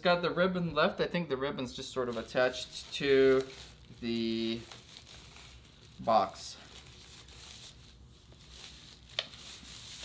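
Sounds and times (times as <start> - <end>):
packaging rustling: 1.9 - 10.0.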